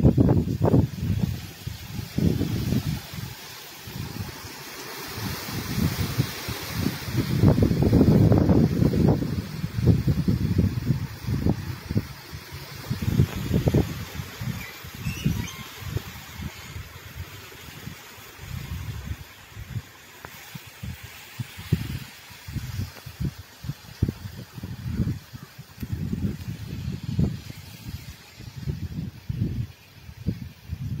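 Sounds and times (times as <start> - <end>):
wind buffeting microphone: 0.0 - 4.5, 5.1 - 20.0, 20.6 - 31.0
wind rushing through trees: 0.0 - 31.0.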